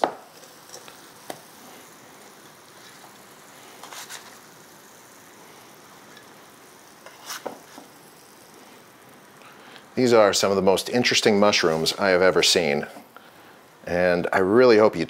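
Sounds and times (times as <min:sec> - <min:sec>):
faint steady hiss: 0:00.0 - 0:15.0
spatula scraping a frying pan: 0:07.0 - 0:07.6.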